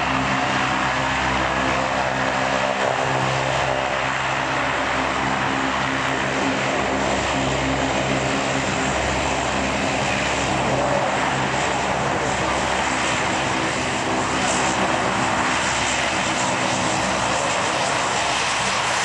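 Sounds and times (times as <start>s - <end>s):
turboprop engines droning: 0.0s - 19.0s.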